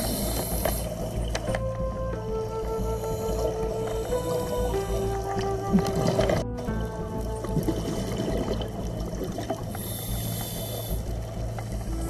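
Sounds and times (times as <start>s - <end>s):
high hiss: 0.0s - 1.3s, 9.7s - 11.2s
muffled underwater rumble: 0.0s - 12.0s.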